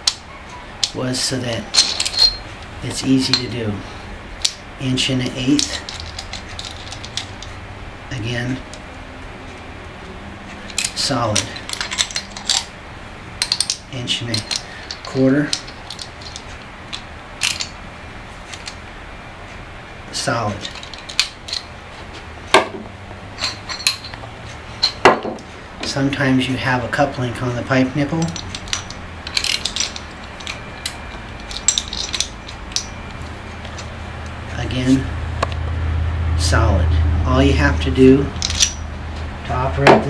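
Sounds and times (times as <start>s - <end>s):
metal tool clinking on pipe: 1.7s - 2.5s, 13.4s - 17.8s, 23.4s - 24.2s, 28.2s - 33.2s, 38.3s - 38.8s.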